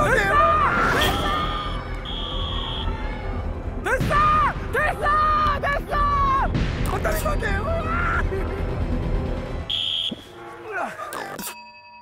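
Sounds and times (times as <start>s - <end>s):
music: 0.0s - 12.0s
referee's whistle blowing: 1.5s - 2.9s, 9.7s - 10.3s.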